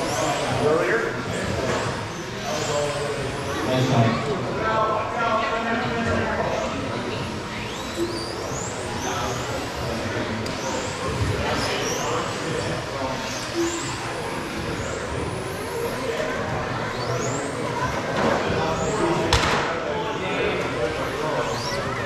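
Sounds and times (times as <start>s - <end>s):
rc car motors whining: 0.0s - 22.0s.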